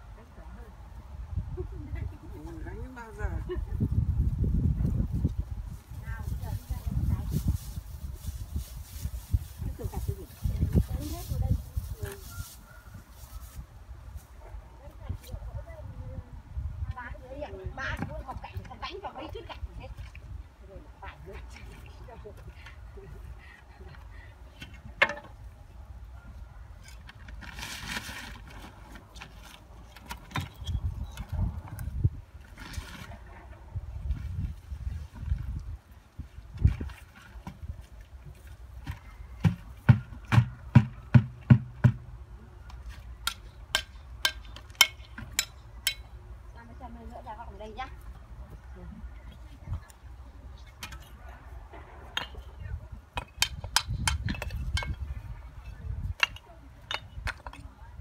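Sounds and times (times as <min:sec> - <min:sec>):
wind rumble on microphone: 0:00.7 - 0:24.0, 0:30.3 - 0:39.2, 0:47.8 - 0:58.0.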